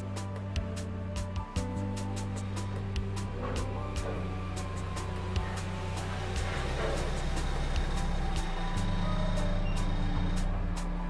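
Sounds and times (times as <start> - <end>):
car engine running: 0.0 - 11.0
music with ticking beat: 0.0 - 11.0.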